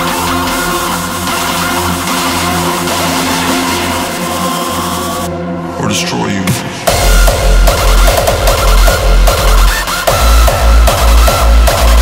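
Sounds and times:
hardstyle electronic dance music: 0.0 - 12.0.

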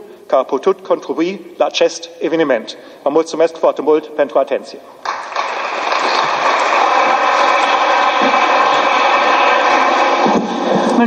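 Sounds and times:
audience applauding: 5.0 - 11.0.

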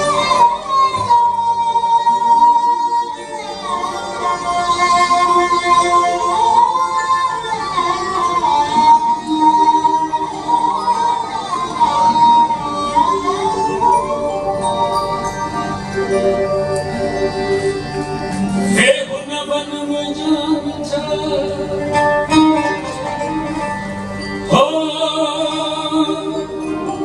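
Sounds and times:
folk ensemble music: 0.0 - 27.0.

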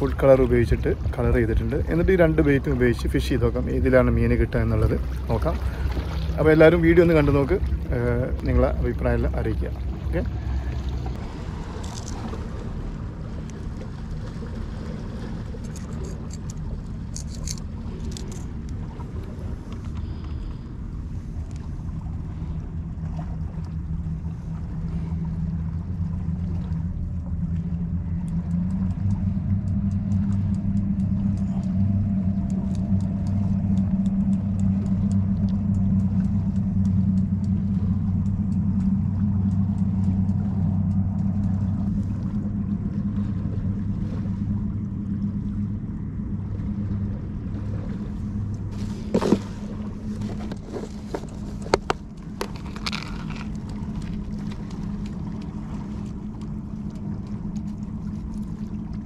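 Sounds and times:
distant engine drone: 0.0 - 59.0
light clicks: 28.2 - 42.4.

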